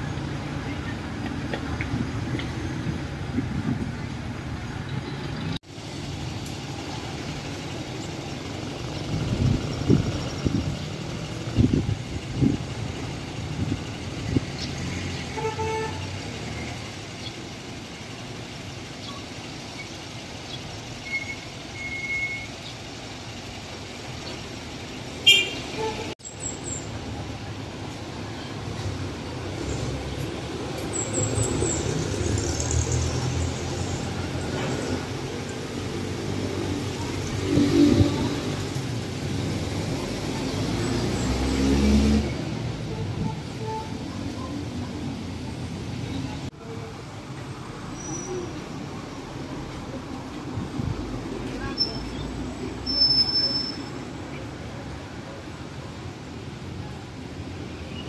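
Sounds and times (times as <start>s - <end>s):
low rumble of passing traffic: 0.0s - 58.0s
vehicle horn toots: 15.3s - 16.1s, 25.2s - 26.1s.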